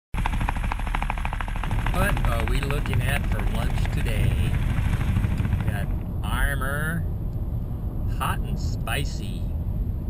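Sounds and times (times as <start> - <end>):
helicopter rotor chop: 0.2 - 7.0.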